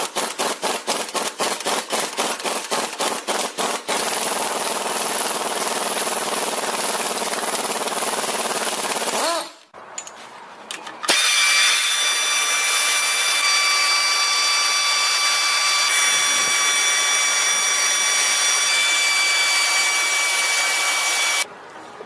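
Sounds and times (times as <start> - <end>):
pneumatic air ratchet whining: 11.1 - 21.4.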